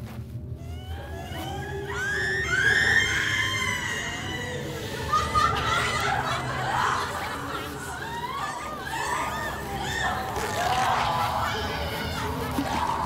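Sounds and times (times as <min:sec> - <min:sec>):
low droning music: 0:00.0 - 0:13.0
woman crying and screaming: 0:00.6 - 0:13.0
voices: 0:00.9 - 0:13.0.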